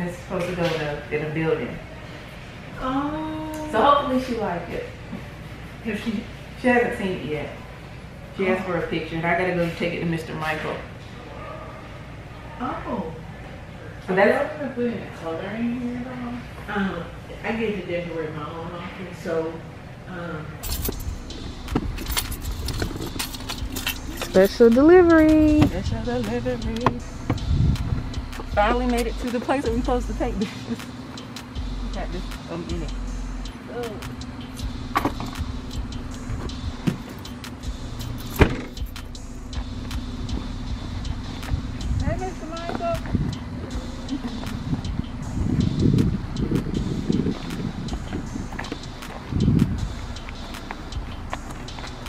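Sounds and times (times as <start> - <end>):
car keys jangling: 20.6 - 29.4, 34.2 - 41.8, 43.7 - 52.0
low rumble: 20.6 - 30.4, 37.6 - 52.0
wind rumbling on microphone: 25.1 - 28.8, 44.5 - 50.1.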